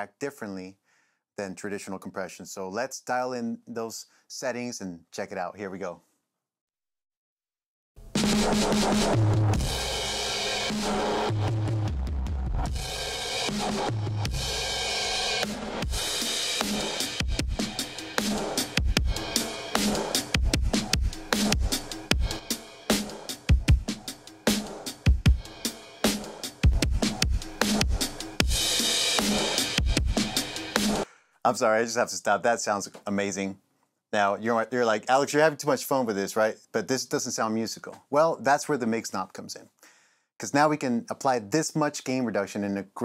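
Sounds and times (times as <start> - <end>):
compressed drum kit: 8.0 - 31.1.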